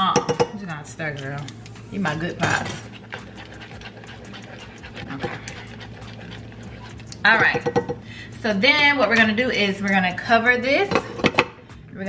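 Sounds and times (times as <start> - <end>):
spoon stirring thick sauce: 1.9 - 8.0.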